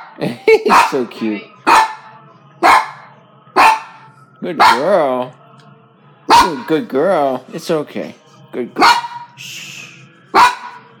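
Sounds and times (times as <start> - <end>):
dog barking: 0.0 - 4.9, 6.3 - 6.8, 8.8 - 9.4, 10.3 - 11.0.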